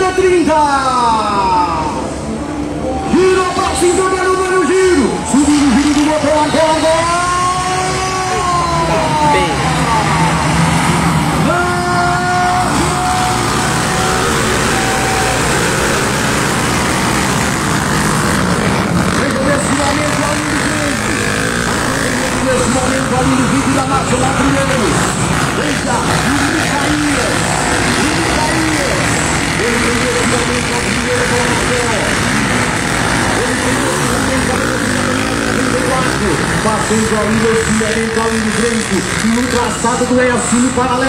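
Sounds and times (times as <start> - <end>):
motorcycles revving and accelerating: 0.0 - 41.0.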